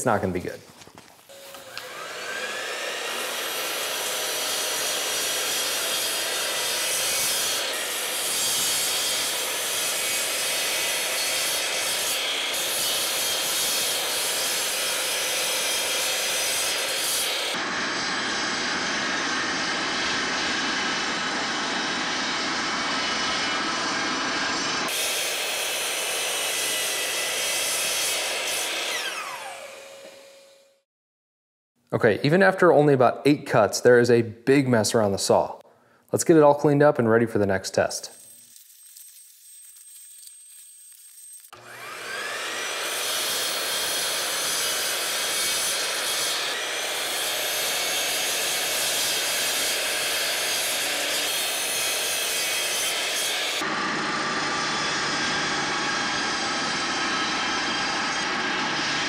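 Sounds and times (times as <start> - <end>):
miter saw cutting wood: 1.3 - 30.8, 39.7 - 59.0
shop vacuum running: 1.3 - 30.8, 41.5 - 59.0.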